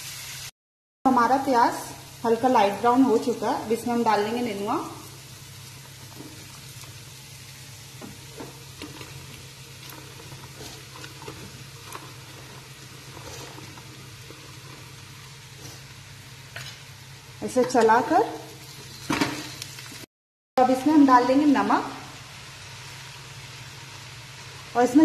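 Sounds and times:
onions sizzling in oil: 0:00.0 - 0:00.5, 0:01.1 - 0:25.0.

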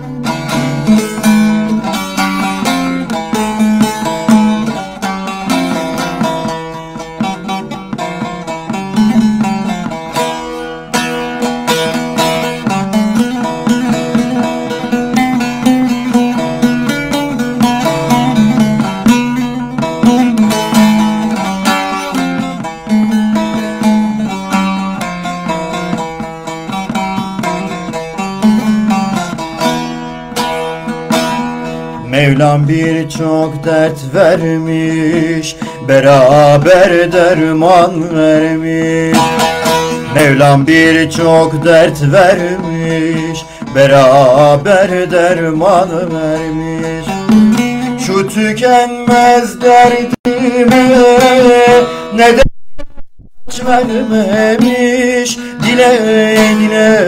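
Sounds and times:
plucked long-necked lute melody: 0:00.0 - 0:57.0.

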